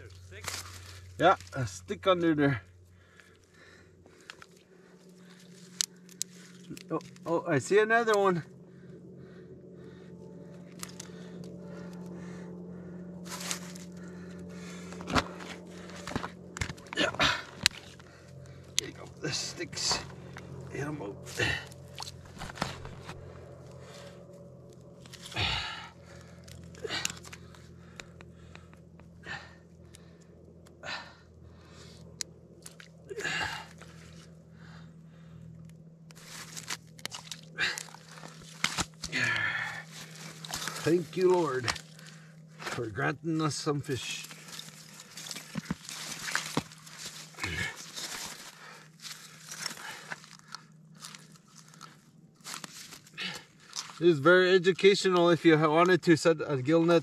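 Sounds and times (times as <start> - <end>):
steady low hum: 0.0 - 57.0
crunches and clicks of ice and net: 36.1 - 42.8, 44.0 - 54.0.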